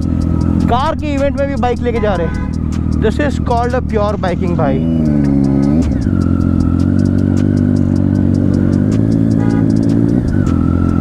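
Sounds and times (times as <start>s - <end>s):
motorcycle engine: 0.0s - 11.0s.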